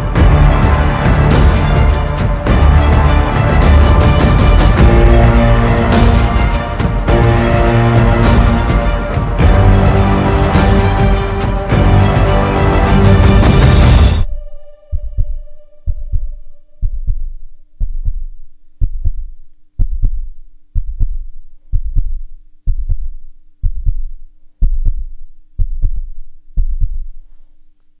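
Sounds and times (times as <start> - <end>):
heartbeat thumps: 14.9 - 27.2.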